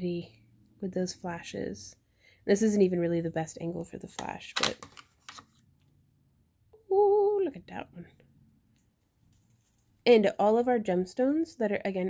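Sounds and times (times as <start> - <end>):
woman saying ooh: 6.8 - 7.6
faint handling of stone: 8.8 - 10.1.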